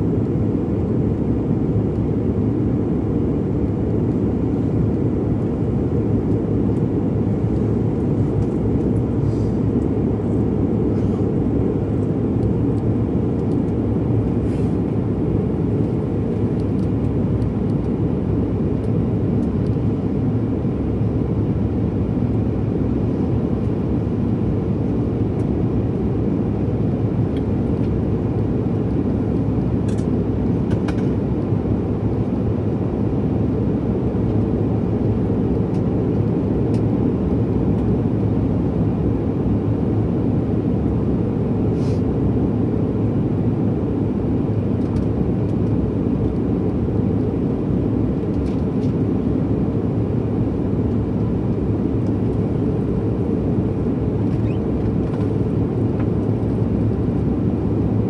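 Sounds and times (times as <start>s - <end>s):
airliner cabin roar: 0.0s - 58.0s.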